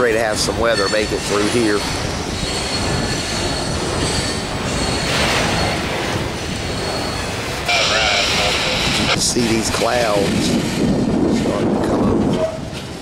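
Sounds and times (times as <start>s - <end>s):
freight train cars rolling: 0.0s - 13.0s
wheels squealing on rails: 0.0s - 13.0s
scanner radio hiss with voice: 7.7s - 9.2s.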